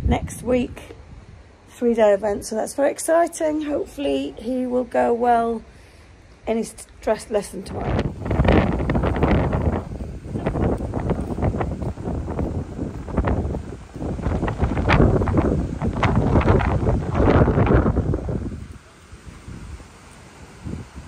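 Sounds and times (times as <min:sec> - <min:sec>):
wind buffeting microphone: 0:00.0 - 0:05.4, 0:07.5 - 0:21.0.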